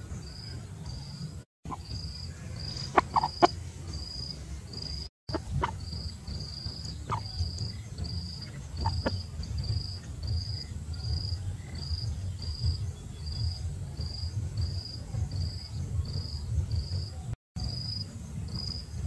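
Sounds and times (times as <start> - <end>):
low rumble: 0.0 - 19.0
insect chirping: 0.3 - 19.0.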